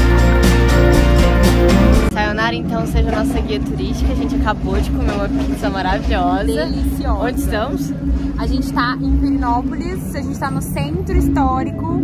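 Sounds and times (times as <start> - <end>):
low hum and rumble: 0.0 - 12.0
women talking: 2.1 - 12.0.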